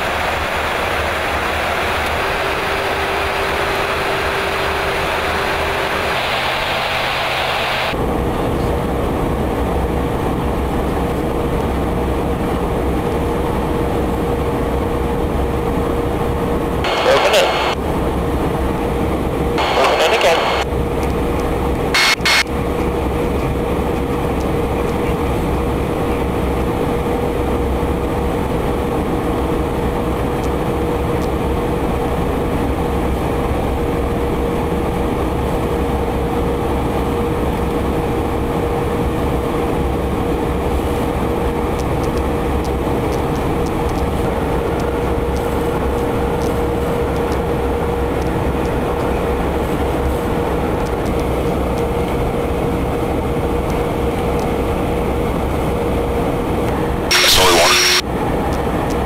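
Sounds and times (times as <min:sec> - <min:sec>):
constant hum: 0:00.0 - 0:59.0
jet aircraft cabin noise: 0:00.0 - 0:59.0
radio chatter: 0:02.0 - 0:08.0, 0:16.8 - 0:17.8, 0:19.6 - 0:20.7, 0:22.0 - 0:22.4, 0:57.1 - 0:58.0.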